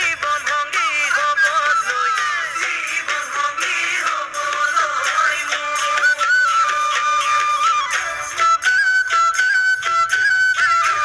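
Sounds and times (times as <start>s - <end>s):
folk song singing: 0.0s - 7.3s
folk instruments: 0.0s - 11.0s.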